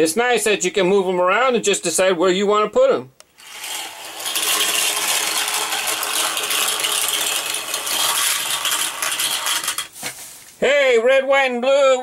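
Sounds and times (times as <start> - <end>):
toy cars rattling down plastic track: 3.4 - 10.0.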